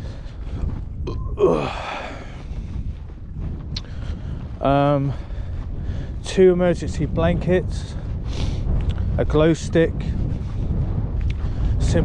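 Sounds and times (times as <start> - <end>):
wind buffeting microphone: 0.0 - 12.0
man sighing: 1.1 - 2.4.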